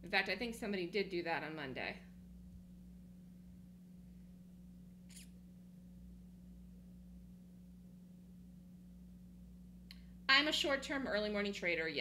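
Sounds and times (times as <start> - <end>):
low hum: 1.8 - 11.9.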